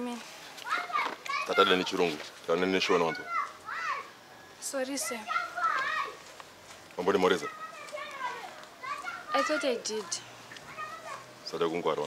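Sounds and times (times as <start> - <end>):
children's voices: 0.0 - 2.0, 2.9 - 4.2, 4.9 - 6.3, 7.4 - 11.4
people talking: 7.4 - 10.2.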